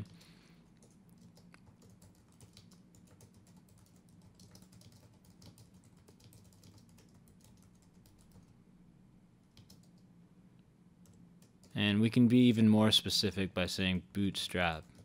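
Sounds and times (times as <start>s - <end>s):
typing on computer keyboard: 0.0s - 8.5s, 9.5s - 10.0s, 11.0s - 11.8s, 14.8s - 15.0s
low steady hum: 0.0s - 15.0s.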